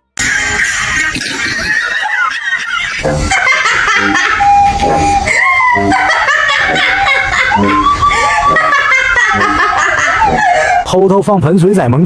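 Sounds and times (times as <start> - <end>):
man laughing: 0.2 - 10.9
man mocking voice sliding pitch: 2.9 - 10.5.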